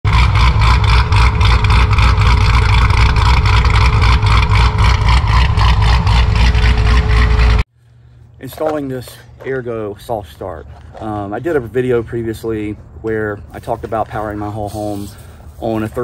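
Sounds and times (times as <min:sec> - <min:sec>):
car engine running: 0:00.0 - 0:07.7.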